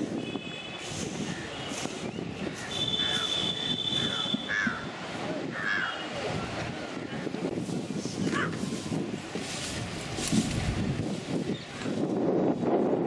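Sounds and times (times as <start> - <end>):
wind: 0.0 - 13.0
crows cawing: 2.6 - 4.9, 5.6 - 6.0.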